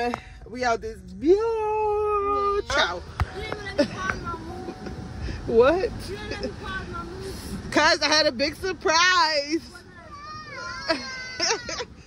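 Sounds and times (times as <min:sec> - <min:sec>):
person crying: 0:10.8 - 0:12.0.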